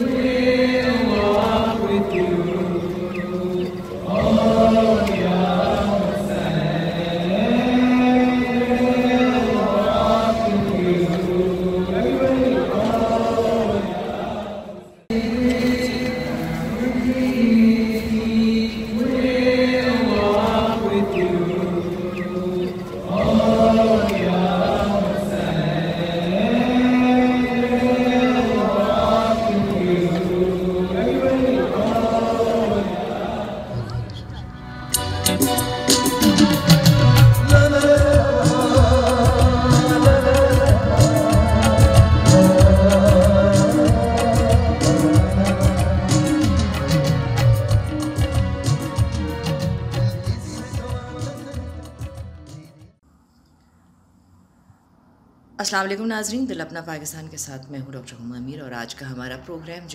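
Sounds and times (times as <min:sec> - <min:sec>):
slow chant-like singing: 0:00.0 - 0:34.3, 0:36.3 - 0:53.1.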